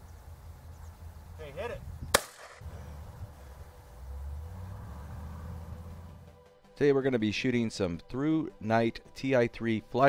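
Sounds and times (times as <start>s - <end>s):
shotgun shot with echo: 2.1s - 2.6s.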